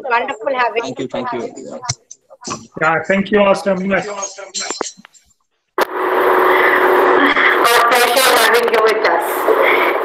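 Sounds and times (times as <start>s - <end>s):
faint hum: 0.0s - 10.0s
steady rushing noise: 5.8s - 10.0s.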